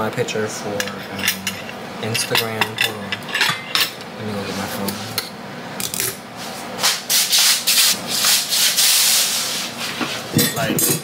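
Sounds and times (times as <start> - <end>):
hissy scraping and rubbing: 6.4 - 10.4.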